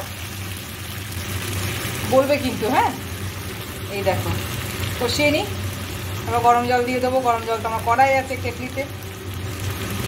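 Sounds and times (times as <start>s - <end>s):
chicken sizzling in oil: 0.0s - 10.0s.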